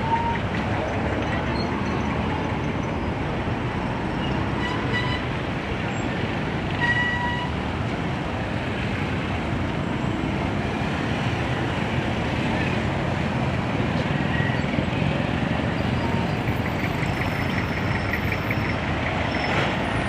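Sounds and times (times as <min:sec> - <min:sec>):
traffic engines running: 0:00.0 - 0:20.0
vehicle horn toot: 0:04.6 - 0:05.3.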